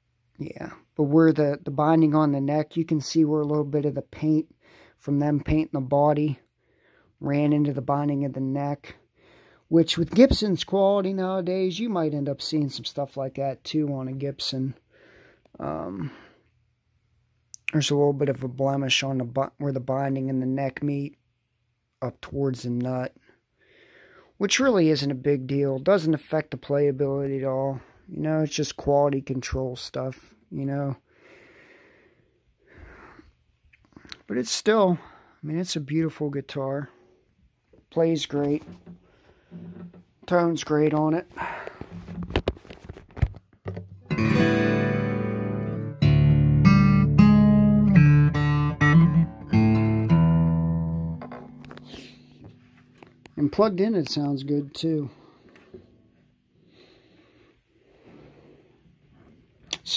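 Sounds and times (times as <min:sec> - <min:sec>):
faint breathing: 0:04.5 - 0:05.0, 0:06.5 - 0:07.2, 0:09.0 - 0:09.7, 0:14.8 - 0:16.6, 0:23.2 - 0:24.4, 0:31.0 - 0:34.2, 0:38.9 - 0:40.0, 0:41.3 - 0:42.2, 0:55.0 - 0:59.5.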